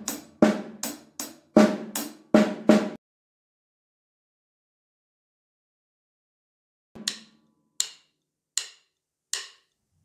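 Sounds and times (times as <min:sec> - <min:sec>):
drumsticks clicking together: 0:07.0 - 0:09.8.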